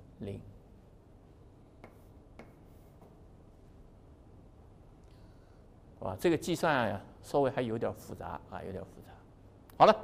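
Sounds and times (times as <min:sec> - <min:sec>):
chalk tapping on blackboard: 0:01.8 - 0:03.2.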